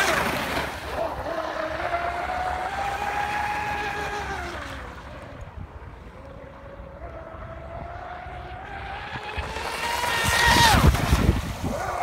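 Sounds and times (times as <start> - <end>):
boat motor whining: 0.0 - 12.0.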